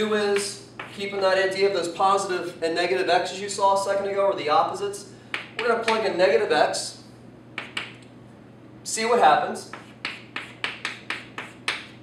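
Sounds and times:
chalk tapping and scraping on chalkboard: 0:00.4 - 0:01.1, 0:07.6 - 0:08.0, 0:09.6 - 0:12.0.

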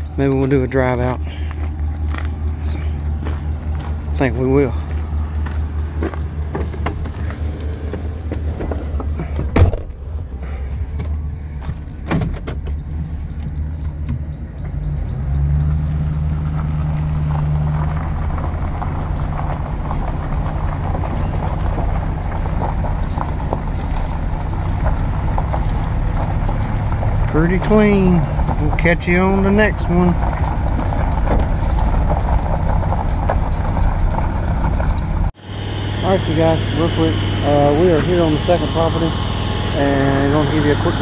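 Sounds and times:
truck engine: 0:00.0 - 0:41.0
tyres on gravel: 0:00.0 - 0:41.0
door shutting thump: 0:07.9 - 0:10.0, 0:12.0 - 0:12.8.

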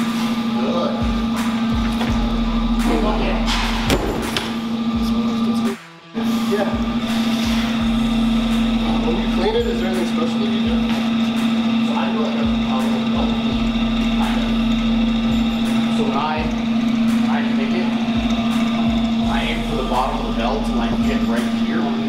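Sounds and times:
steady hum: 0:00.0 - 0:22.0.

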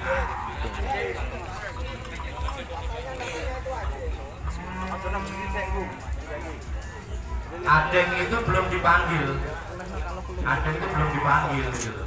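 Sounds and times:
crowd chatter: 0:00.0 - 0:12.0
cow mooing: 0:04.4 - 0:05.9.

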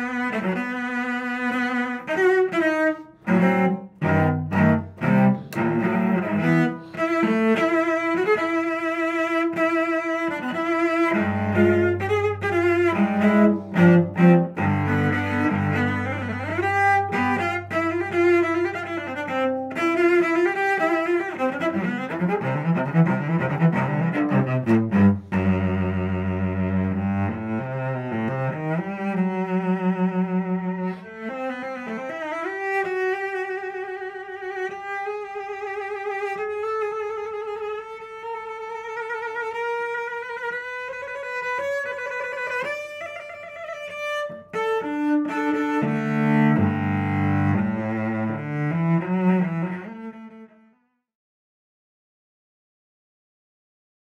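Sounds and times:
bowed cello: 0:00.0 - 0:50.8.

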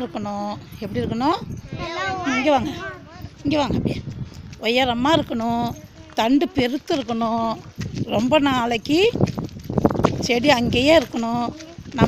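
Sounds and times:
children talking: 0:00.0 - 0:09.3, 0:10.1 - 0:12.0
woman talking: 0:00.0 - 0:09.3, 0:10.2 - 0:12.0.

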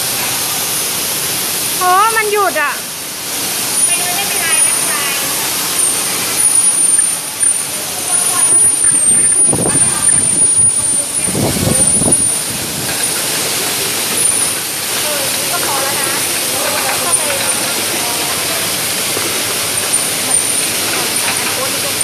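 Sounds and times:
machinery hiss and rumble: 0:00.0 - 0:22.0
loud machine rushes: 0:02.8 - 0:22.0.

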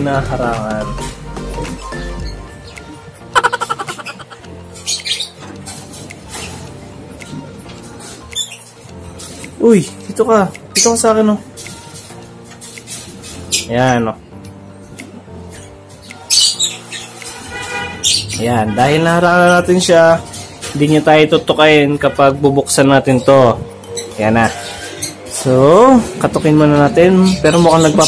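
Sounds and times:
background music: 0:00.0 - 0:28.0
lovebird squawking: 0:02.2 - 0:05.4, 0:15.7 - 0:18.5.

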